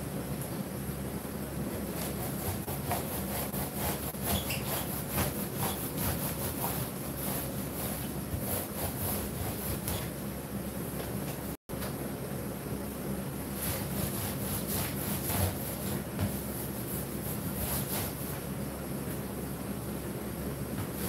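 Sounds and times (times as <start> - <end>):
steady low hum: 0.0 - 21.0
paint roller rubbing swish: 2.0 - 10.2.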